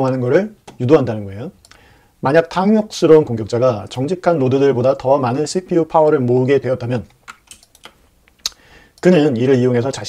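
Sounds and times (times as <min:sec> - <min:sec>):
computer mouse or keyboard clicks: 0:07.2 - 0:08.0.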